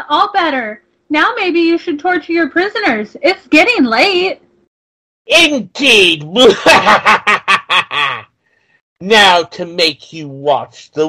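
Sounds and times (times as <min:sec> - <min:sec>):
person laughing loudly: 0:06.4 - 0:08.3.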